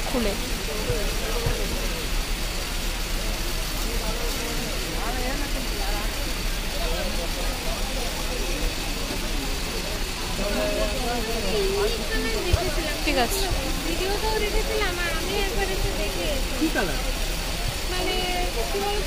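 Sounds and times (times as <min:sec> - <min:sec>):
people talking indistinctly: 0:00.0 - 0:19.0
traffic hum: 0:00.0 - 0:19.0.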